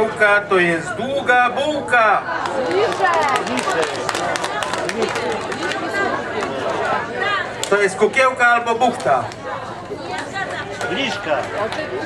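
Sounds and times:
babble of overlapping voices: 0.0 - 12.0.

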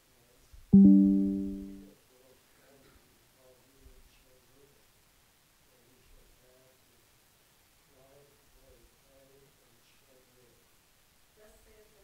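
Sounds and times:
struck musical note: 0.8 - 1.8.

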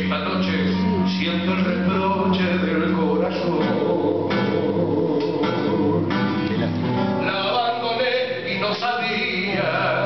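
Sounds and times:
acoustic guitar tango: 0.0 - 10.0.

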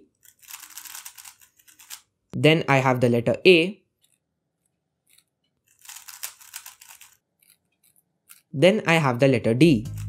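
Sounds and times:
puzzle cube clicking: 0.1 - 2.1, 5.1 - 8.5.

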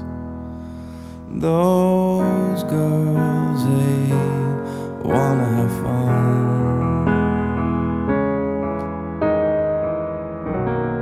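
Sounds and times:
soft piano chords: 0.0 - 11.0.

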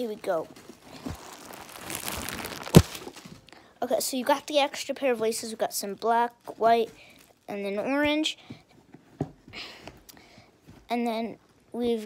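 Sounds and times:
rustling handling noise: 0.0 - 3.6.

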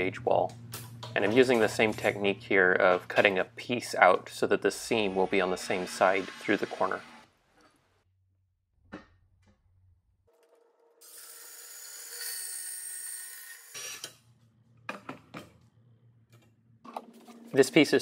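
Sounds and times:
band saw cutting steel: 4.7 - 7.3, 11.0 - 14.1.

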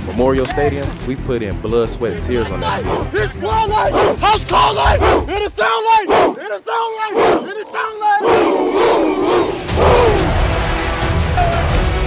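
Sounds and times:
bass-heavy music: 0.0 - 5.6, 8.7 - 12.0
football players yelling: 2.2 - 10.4.

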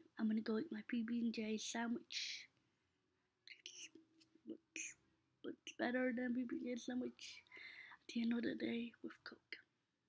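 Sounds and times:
woman whispering: 3.5 - 9.7.

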